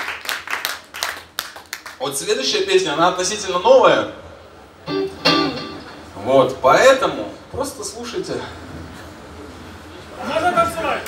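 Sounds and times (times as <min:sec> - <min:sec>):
guitar chord ringing: 0:04.9 - 0:06.2.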